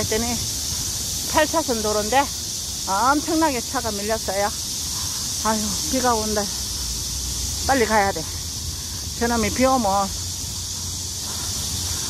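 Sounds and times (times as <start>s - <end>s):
cicada chorus hissing: 0.0s - 12.0s.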